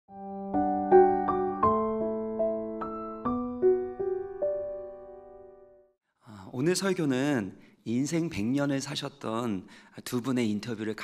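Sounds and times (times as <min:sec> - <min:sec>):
slow soft piano music: 0:00.1 - 0:06.0.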